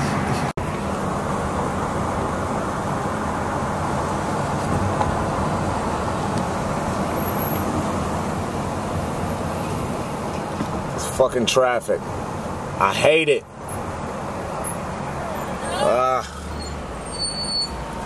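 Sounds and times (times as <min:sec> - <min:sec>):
road noise and engine hum: 0:00.0 - 0:18.0.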